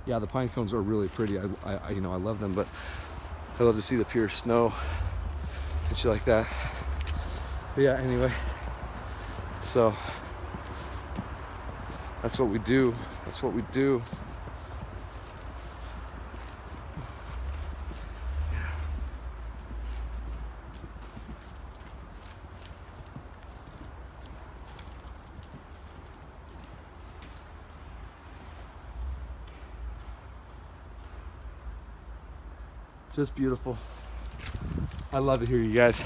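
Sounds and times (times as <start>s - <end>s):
footsteps in snow: 0.1s - 25.2s, 33.6s - 36.0s.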